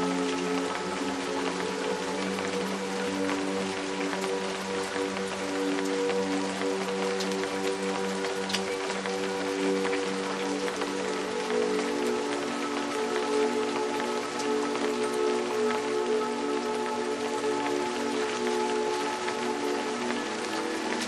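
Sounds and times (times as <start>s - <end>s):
soft music with held notes: 0.0s - 21.0s
steady rain falling: 0.0s - 21.0s.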